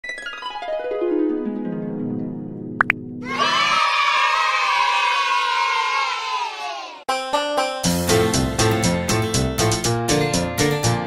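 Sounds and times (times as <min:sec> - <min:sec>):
children cheering: 0:03.2 - 0:07.0.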